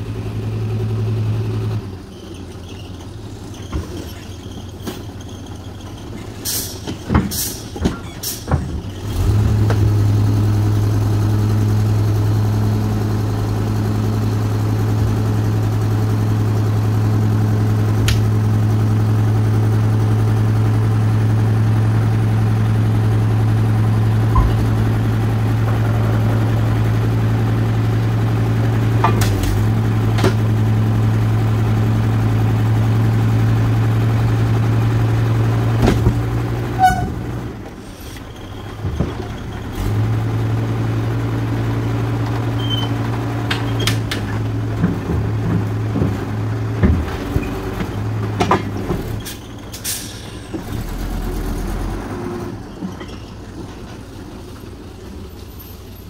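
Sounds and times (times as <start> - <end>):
diesel engine droning: 0.0 - 56.0.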